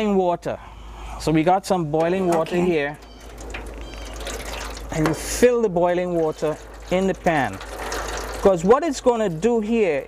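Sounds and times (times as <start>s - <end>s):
water pouring into metal pan: 2.0s - 10.0s.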